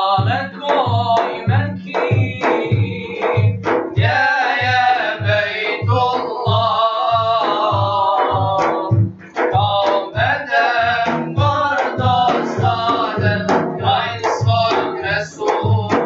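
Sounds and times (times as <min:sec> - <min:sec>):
frame drums beating: 0:00.0 - 0:16.0
men singing a hymn: 0:00.0 - 0:16.0.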